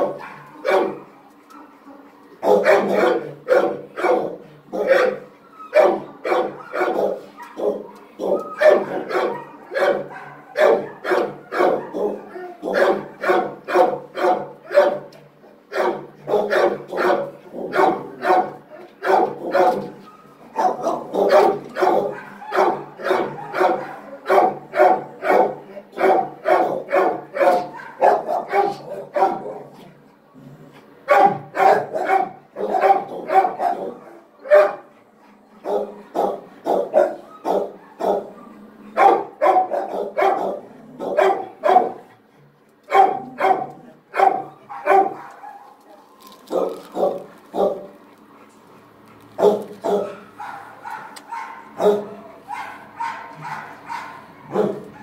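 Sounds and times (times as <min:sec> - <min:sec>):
dog barking: 0:00.0 - 0:01.1, 0:02.4 - 0:15.1, 0:15.7 - 0:20.0, 0:20.6 - 0:29.7, 0:31.1 - 0:34.9, 0:35.6 - 0:38.4, 0:39.0 - 0:42.1, 0:42.9 - 0:45.8, 0:46.5 - 0:47.9, 0:49.4 - 0:55.0.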